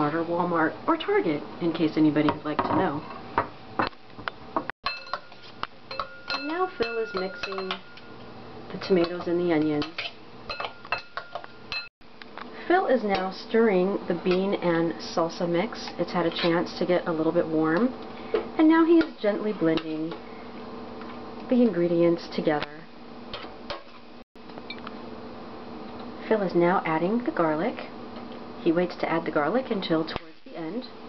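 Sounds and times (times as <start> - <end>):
low room hum: 0.0 - 31.0
metal utensil clinking on glass bowl: 4.8 - 8.2, 8.8 - 11.9.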